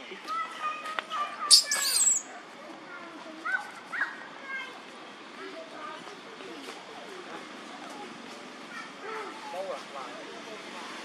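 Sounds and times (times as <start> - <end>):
baby monkey crying: 1.5 - 2.2.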